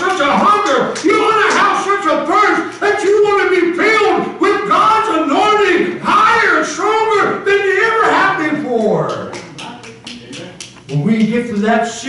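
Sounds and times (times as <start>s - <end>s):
man preaching: 0.0s - 12.0s.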